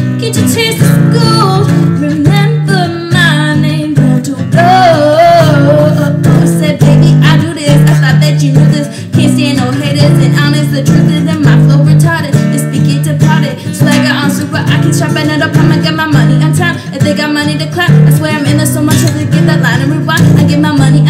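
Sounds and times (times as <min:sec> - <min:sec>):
acoustic guitar strumming: 0:00.0 - 0:21.0
woman singing: 0:00.0 - 0:21.0.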